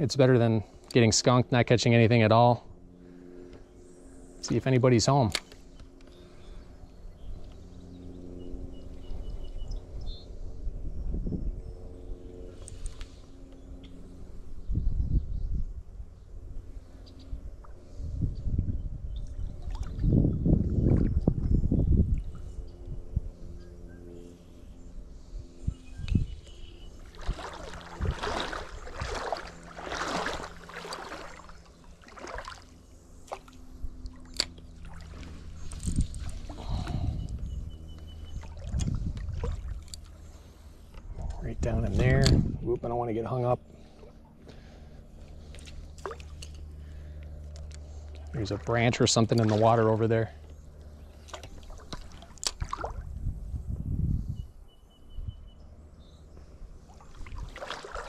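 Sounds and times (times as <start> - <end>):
faint low hum: 0.0 - 58.0
wind gusting over microphone: 9.2 - 12.5, 14.6 - 16.6, 17.4 - 23.4, 27.1 - 30.6, 35.3 - 39.9, 41.1 - 43.3, 52.0 - 55.5.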